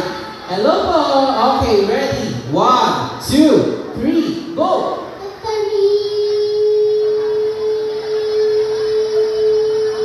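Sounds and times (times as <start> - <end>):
child singing a long note: 5.2 - 10.0.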